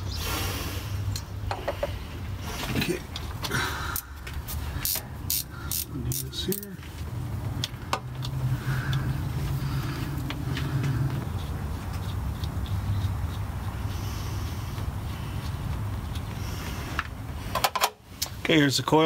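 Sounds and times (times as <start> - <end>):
steady low hum: 0.0 - 18.7.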